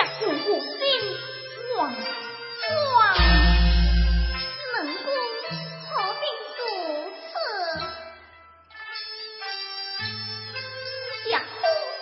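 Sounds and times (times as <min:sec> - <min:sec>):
opera music with sliding melody: 0:00.0 - 0:09.3
strong low rumble: 0:03.2 - 0:04.4.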